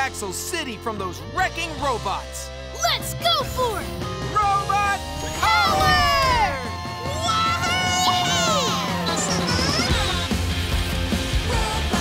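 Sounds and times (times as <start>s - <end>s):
background music: 0.0s - 12.0s
cartoon voices cheering and whooping: 4.8s - 10.2s
long held shout: 5.4s - 9.5s.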